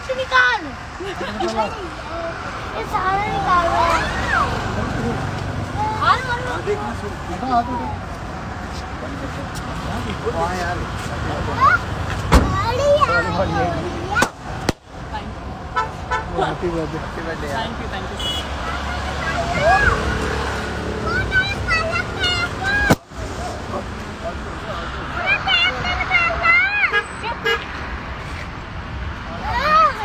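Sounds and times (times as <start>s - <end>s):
excited voices: 0.0s - 8.1s, 18.4s - 23.7s, 24.4s - 27.5s, 29.2s - 30.0s.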